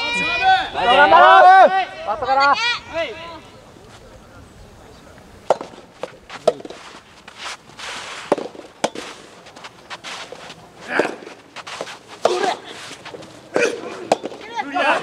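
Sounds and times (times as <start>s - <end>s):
players shouting: 0.0s - 3.8s, 9.0s - 15.0s
tennis ball pops: 5.5s - 6.8s, 8.2s - 9.2s, 13.5s - 14.5s.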